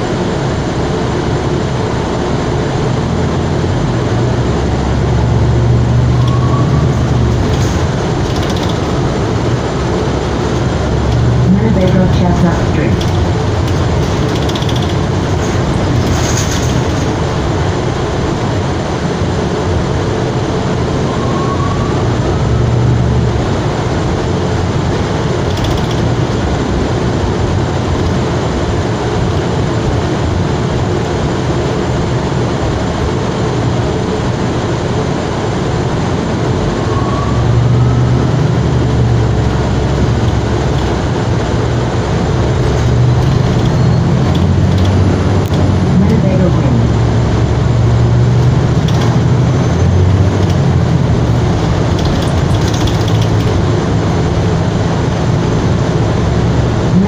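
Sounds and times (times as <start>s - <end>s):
bus drivetrain and road rumble: 0.0s - 57.0s.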